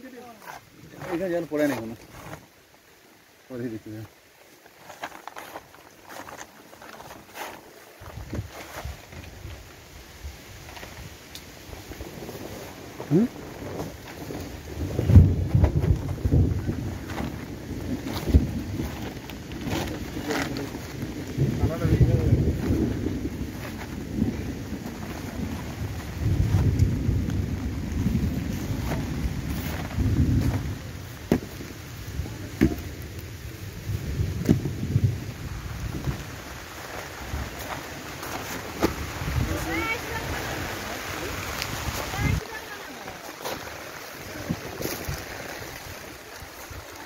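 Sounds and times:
footsteps on grass and stalks: 0.0s - 2.9s, 3.9s - 47.0s
wind buffeting microphone: 8.0s - 42.8s, 43.7s - 47.0s.

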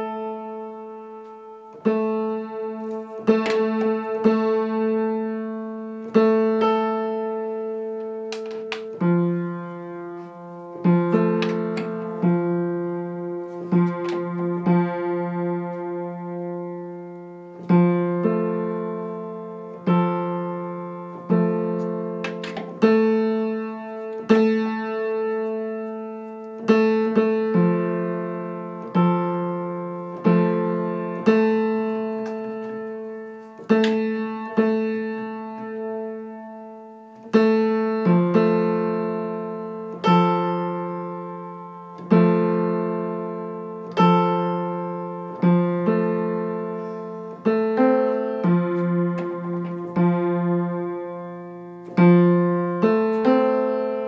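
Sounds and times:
lower piano notes: 0.0s - 54.0s
piano notes ringing: 0.0s - 54.0s.

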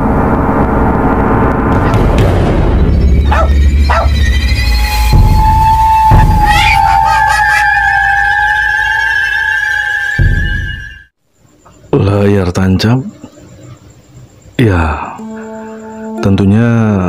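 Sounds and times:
percussive hits: 1.7s - 3.2s
high wavering held tones: 2.9s - 11.1s, 15.2s - 17.0s.

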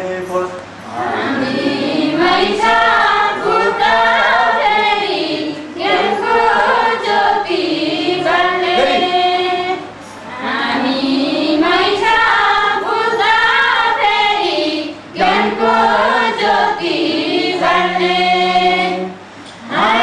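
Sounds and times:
women singing together: 0.8s - 20.0s.

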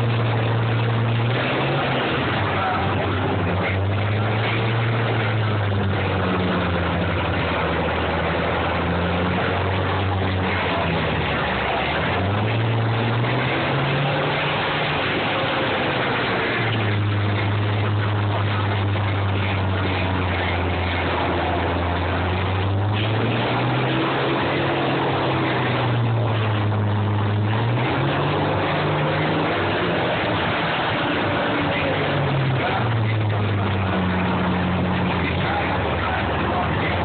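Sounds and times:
combine harvester engines revving: 0.0s - 37.0s.

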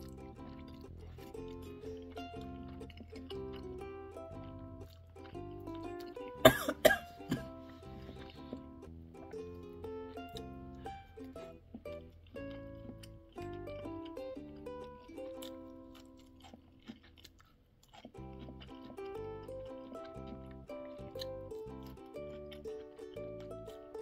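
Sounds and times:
light music with steady beat: 0.0s - 15.5s
woman coughing: 6.4s - 7.5s.

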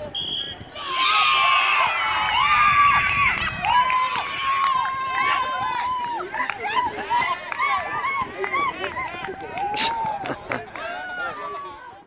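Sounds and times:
children shouting and cheering: 0.8s - 12.0s.

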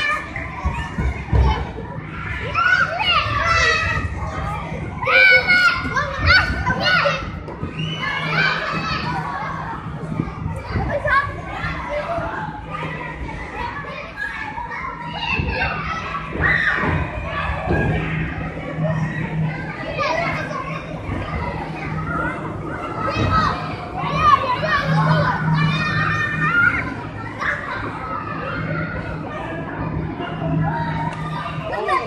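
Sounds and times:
children shouting and calling: 0.0s - 32.0s
steady low hum: 0.0s - 32.0s.

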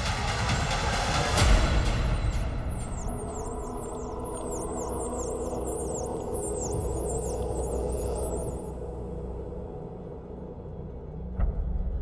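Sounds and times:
ambient music drone: 0.0s - 12.0s.

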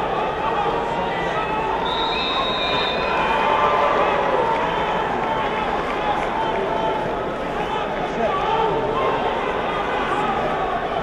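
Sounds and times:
crowd voices din: 0.0s - 11.0s.

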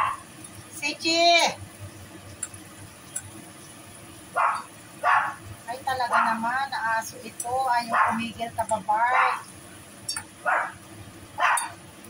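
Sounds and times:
dog barking: 0.0s - 0.3s, 4.4s - 5.4s, 6.1s - 6.5s, 7.9s - 8.3s, 9.1s - 9.5s, 10.4s - 10.8s, 11.4s - 11.8s.

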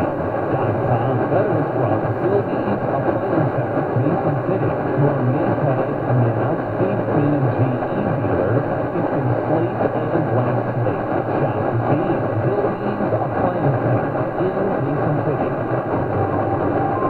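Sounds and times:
faint radio program audio: 0.0s - 17.0s
radio static: 0.0s - 17.0s.

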